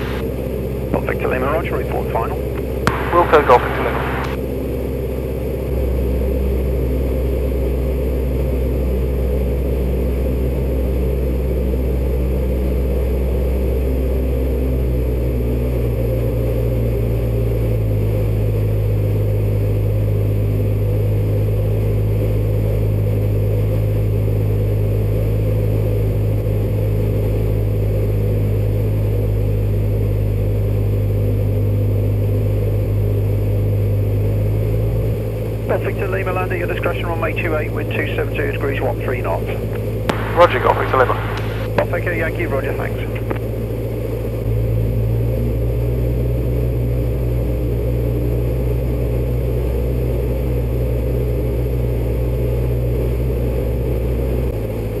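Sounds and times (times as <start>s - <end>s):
light aircraft engine drone: 0.0s - 55.0s.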